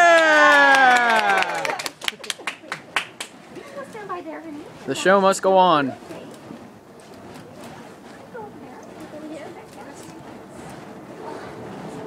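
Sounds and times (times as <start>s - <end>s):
person cheering yeah: 0.0s - 1.8s
hand claps: 0.0s - 3.4s.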